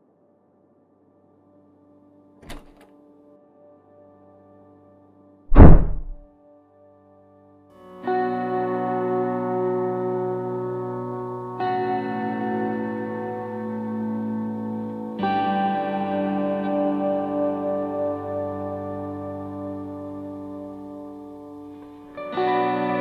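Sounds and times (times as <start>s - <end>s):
slow music with held chords: 0.0s - 5.4s, 6.3s - 23.0s
heavy thud: 5.5s - 6.2s.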